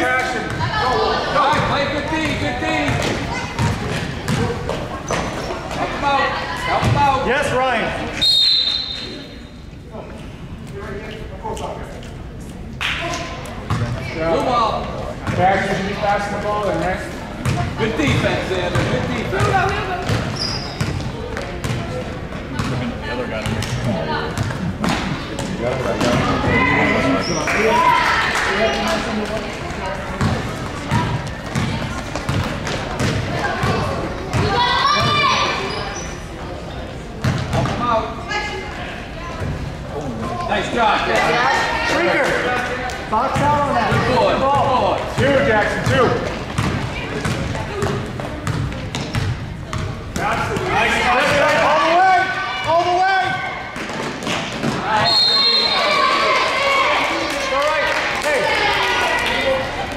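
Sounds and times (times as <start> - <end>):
echoing hubbub of voices: 0.0 - 59.9.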